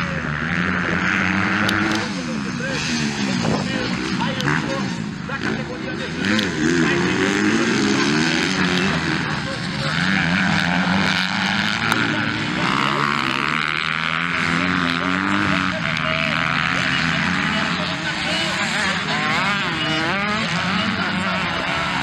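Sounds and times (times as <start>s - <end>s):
dirt bike engines revving: 0.0s - 22.0s.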